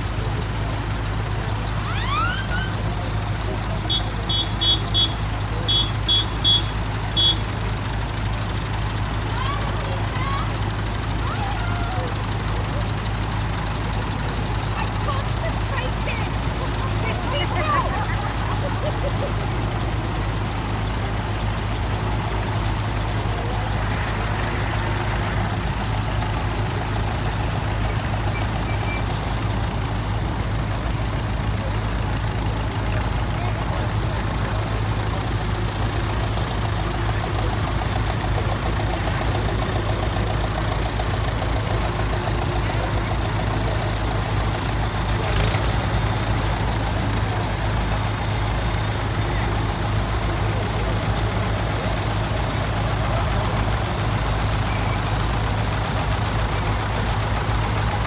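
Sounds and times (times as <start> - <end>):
tractor engines running slowly: 0.0 - 58.0.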